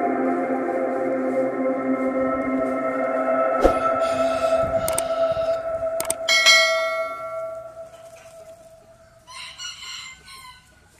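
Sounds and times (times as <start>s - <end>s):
bell-like ringing tones: 3.9s - 9.1s
sharp chime struck: 6.2s - 8.0s
chicken clucking: 9.0s - 10.9s.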